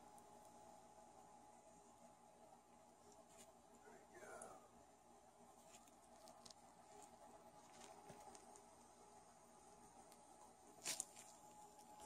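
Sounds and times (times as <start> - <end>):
handling rustle: 5.6 - 8.7, 10.8 - 12.0.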